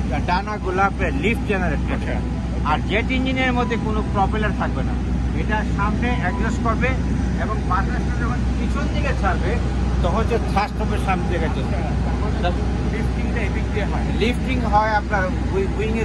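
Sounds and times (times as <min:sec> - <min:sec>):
low hum: 0:00.0 - 0:16.0
man talking: 0:00.0 - 0:16.0.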